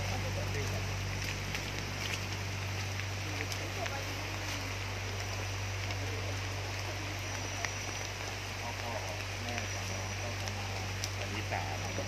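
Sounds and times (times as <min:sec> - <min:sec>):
faint voices: 0:00.0 - 0:12.0
low steady hum: 0:00.0 - 0:12.0
steady rain falling: 0:00.0 - 0:12.0.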